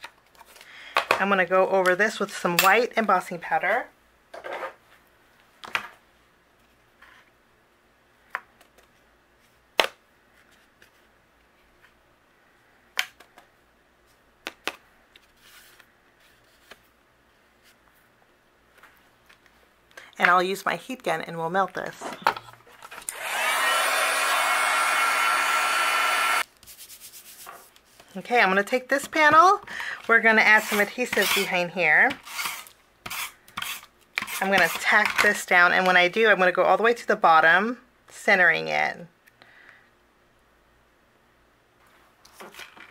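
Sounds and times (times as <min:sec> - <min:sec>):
soft rustle: 0:15.1 - 0:19.8
papery scrapes and rubs: 0:15.2 - 0:16.8, 0:26.6 - 0:28.2, 0:30.5 - 0:31.6.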